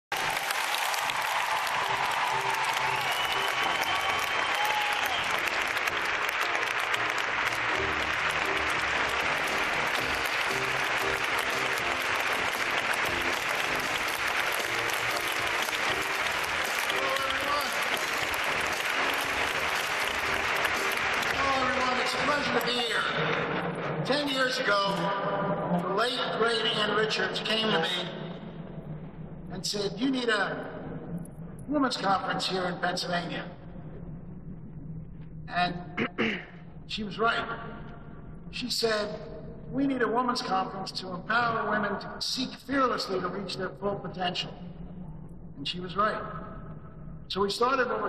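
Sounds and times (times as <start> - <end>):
large audience clapping: 0.0 - 23.8
music over sound system: 1.8 - 24.2.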